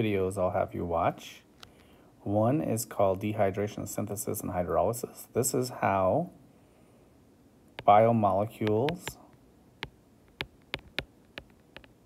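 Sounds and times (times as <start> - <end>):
stylus tapping on glass screen: 8.6 - 9.2, 9.8 - 12.0.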